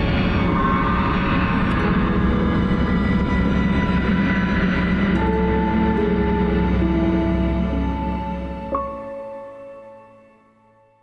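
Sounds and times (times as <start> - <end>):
sustained orchestral notes: 1.4 - 10.8.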